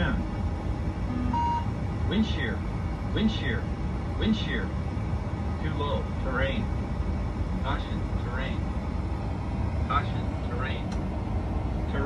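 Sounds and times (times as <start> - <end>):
low cockpit hum: 0.0 - 12.0
short single-pitch beep: 1.1 - 1.7.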